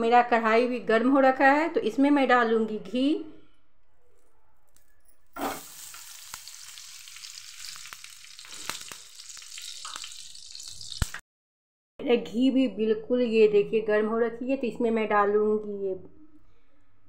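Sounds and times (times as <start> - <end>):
ghee landing in a hot pan: 5.4 - 11.2
ghee sizzling in a pan: 5.4 - 11.2.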